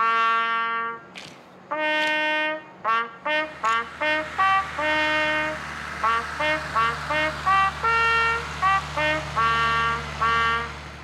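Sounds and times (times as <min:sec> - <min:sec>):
solo bugle call: 0:00.0 - 0:01.1, 0:01.7 - 0:10.8.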